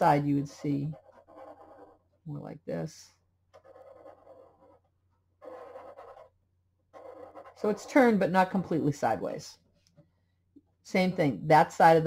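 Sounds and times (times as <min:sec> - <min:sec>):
felt-tip marker drawing on paper: 0:00.1 - 0:02.1, 0:03.6 - 0:06.3, 0:07.0 - 0:08.2.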